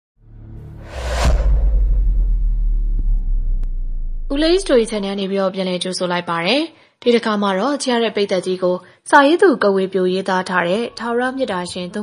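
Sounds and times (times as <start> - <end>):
deep bass rumble: 0.2 - 5.1
whoosh sweep: 0.6 - 5.0.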